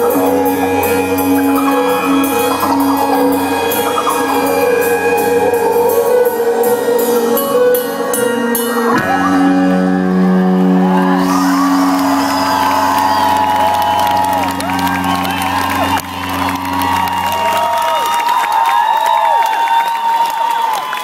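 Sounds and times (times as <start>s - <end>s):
crowd cheering and whooping: 0.0s - 7.0s, 8.9s - 21.0s.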